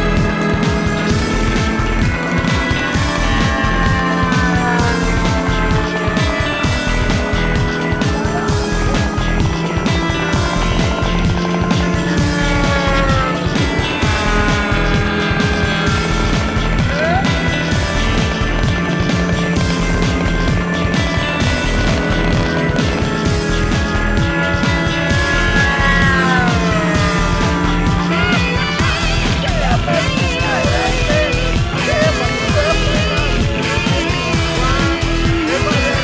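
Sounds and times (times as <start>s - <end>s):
model plane engine passing by: 0.0s - 31.2s
rock music with steady beat: 0.0s - 36.0s.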